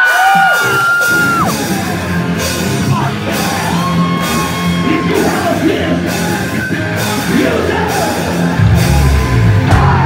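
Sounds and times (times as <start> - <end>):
punk band playing live: 0.0 - 10.0.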